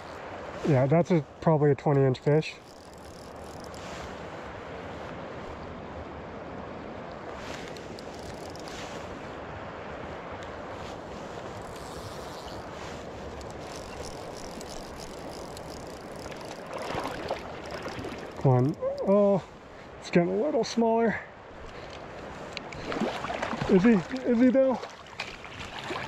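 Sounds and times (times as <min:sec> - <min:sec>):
water rushing around legs: 0:10.9 - 0:20.6, 0:21.7 - 0:26.0.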